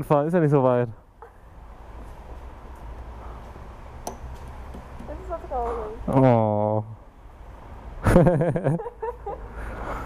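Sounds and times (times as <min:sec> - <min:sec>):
sharp click: 0:04.0 - 0:04.8.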